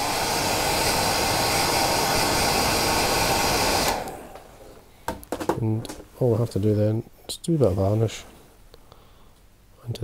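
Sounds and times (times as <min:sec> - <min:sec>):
hairdryer blowing: 0:00.0 - 0:04.6.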